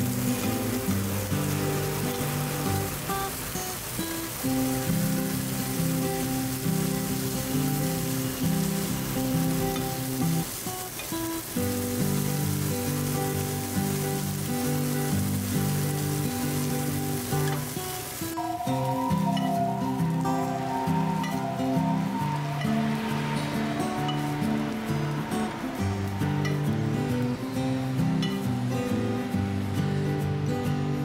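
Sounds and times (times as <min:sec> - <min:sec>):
meat sizzling in a pan: 0:00.0 - 0:30.5.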